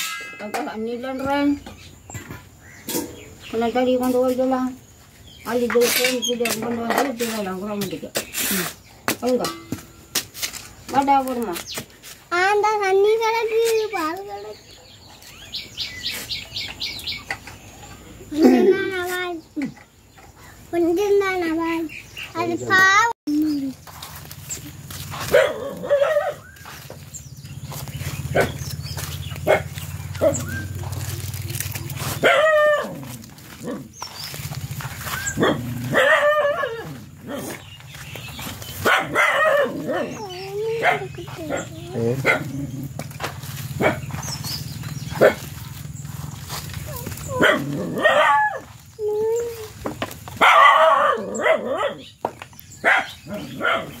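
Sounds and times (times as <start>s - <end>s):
dog howling call: 32.2s - 33.2s, 35.3s - 37.5s, 50.4s - 52.0s.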